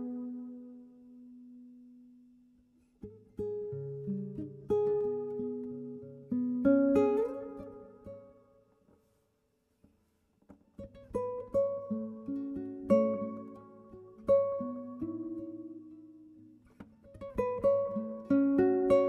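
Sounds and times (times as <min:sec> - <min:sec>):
fingerstyle classical guitar: 0:00.0 - 0:19.0.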